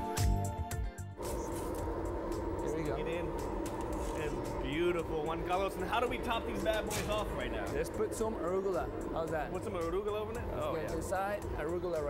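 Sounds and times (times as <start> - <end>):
faint steady hum: 1.2 - 11.8
kitchen equipment rumble: 1.2 - 11.9.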